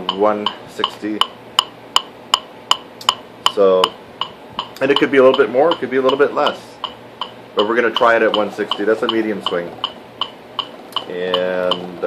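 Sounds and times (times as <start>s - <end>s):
metronome clicking: 0.0s - 12.0s.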